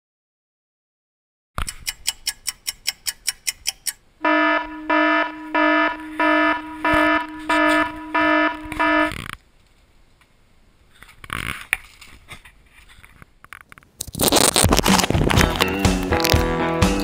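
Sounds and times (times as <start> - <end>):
alarm clock beeping: 4.2 - 9.2.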